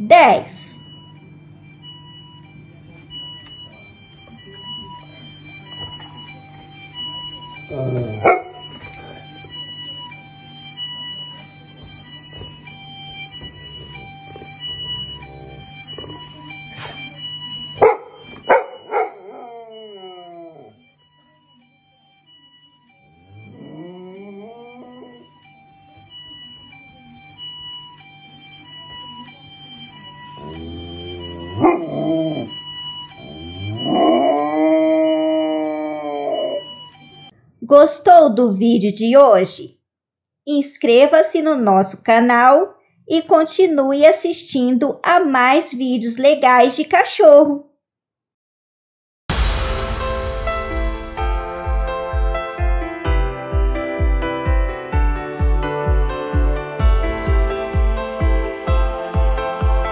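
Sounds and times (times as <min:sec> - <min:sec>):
dog howling: 0:07.6 - 0:09.3, 0:17.8 - 0:20.8, 0:23.2 - 0:25.2, 0:30.4 - 0:32.6, 0:33.2 - 0:36.7
background music: 0:07.7 - 0:09.2, 0:30.4 - 0:32.6, 0:49.3 - 0:59.9.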